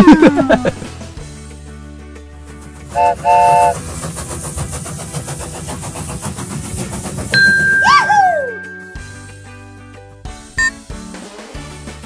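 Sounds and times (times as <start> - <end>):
steam locomotive chugging: 2.3 - 9.6
steam train whistle toots: 2.7 - 4.4, 7.3 - 9.3.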